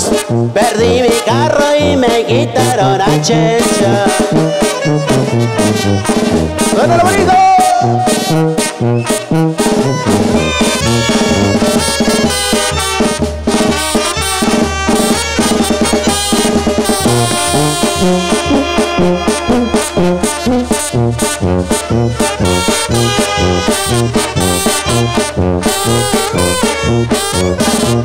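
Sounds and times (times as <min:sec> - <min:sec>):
drums steady beat: 0:00.0 - 0:28.0
trumpets and trombones melody: 0:00.0 - 0:28.0
tuba bass line: 0:00.0 - 0:28.0.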